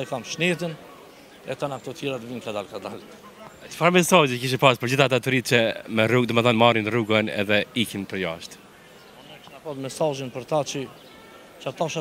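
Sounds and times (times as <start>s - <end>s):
man speaking: 1.5s - 8.6s.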